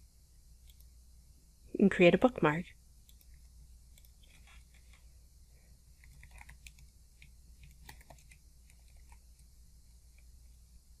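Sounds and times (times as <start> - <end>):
faint keyboard typing: 0.6 - 0.9, 3.0 - 5.1, 5.9 - 10.7.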